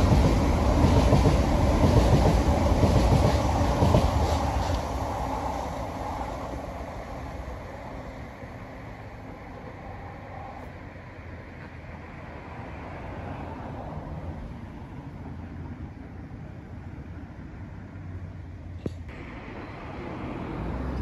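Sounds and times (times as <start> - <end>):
train passing close by: 0.0 - 18.2, 19.1 - 21.0.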